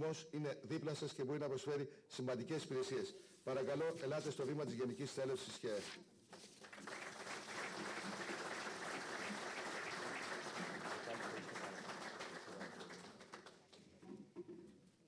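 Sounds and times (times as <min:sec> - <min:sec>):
audience applauding: 0:06.4 - 0:13.9.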